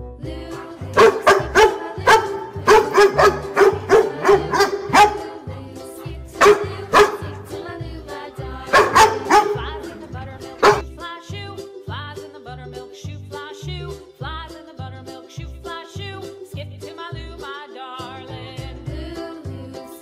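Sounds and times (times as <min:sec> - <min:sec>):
bouncy children's music: 0:00.0 - 0:20.0
dog barking: 0:00.9 - 0:05.4, 0:06.4 - 0:07.4, 0:08.7 - 0:09.9, 0:10.6 - 0:10.8.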